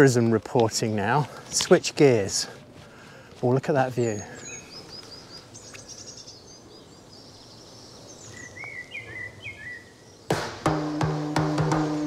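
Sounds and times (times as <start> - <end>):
small birds chirping: 0.0 - 10.9
faint outdoor background noise: 0.0 - 12.0
music with drums and bass: 10.3 - 12.0.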